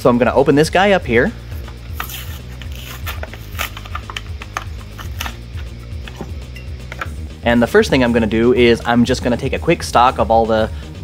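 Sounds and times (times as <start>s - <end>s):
background music with bass beat: 0.0s - 11.0s
plastic blister pack crinkling: 1.9s - 5.4s.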